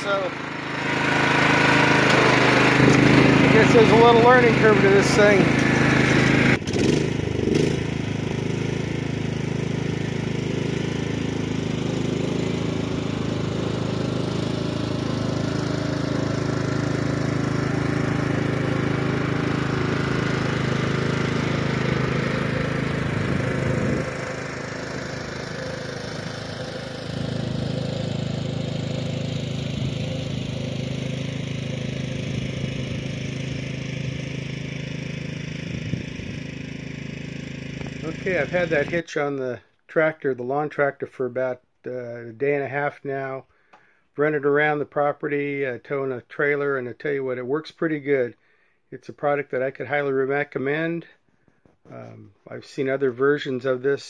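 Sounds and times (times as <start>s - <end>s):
lawn tractor engine running: 0.0s - 39.5s.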